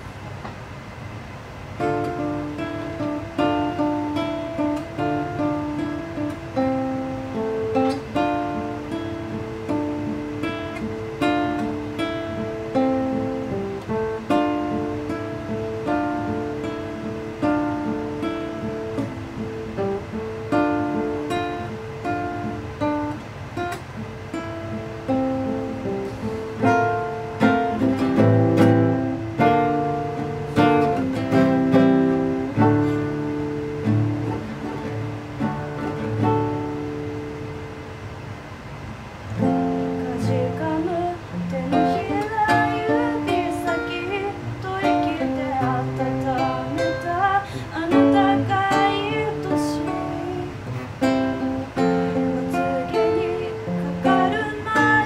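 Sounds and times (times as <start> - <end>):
acoustic guitar picking notes: 0.0 - 55.0.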